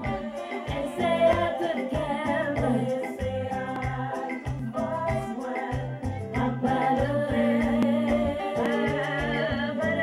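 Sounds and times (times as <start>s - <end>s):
instrumental backing with bass: 0.0s - 10.0s
percussion ticks: 0.0s - 10.0s
woman singing gospel through pa: 0.0s - 10.0s.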